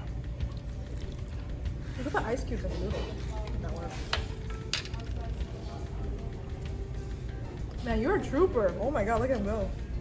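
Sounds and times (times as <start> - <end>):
low restaurant room hum: 0.0 - 10.0.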